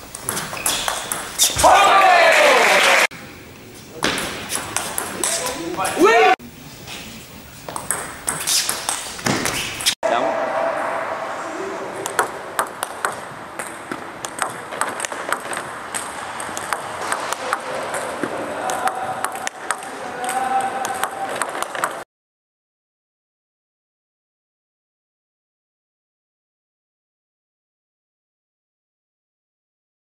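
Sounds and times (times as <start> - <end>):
table tennis balls clicking: 0.1 - 1.5, 4.5 - 5.6, 7.7 - 10.0, 12.0 - 22.0.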